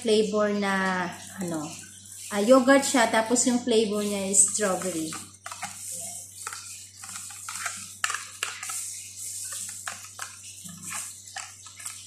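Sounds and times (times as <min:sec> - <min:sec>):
spoon scraping plastic cup: 0:01.2 - 0:12.0.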